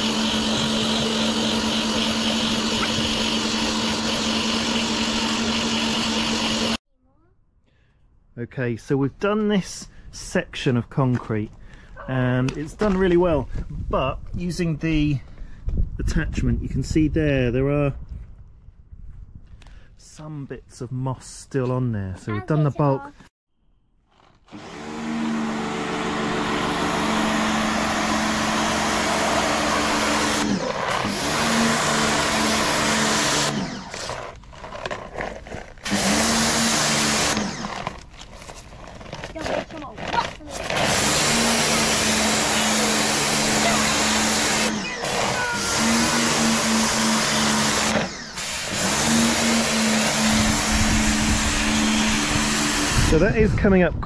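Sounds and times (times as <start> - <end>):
pressure washer motor hum: 0.0 - 6.8, 24.5 - 34.7, 35.8 - 38.1, 40.6 - 53.3.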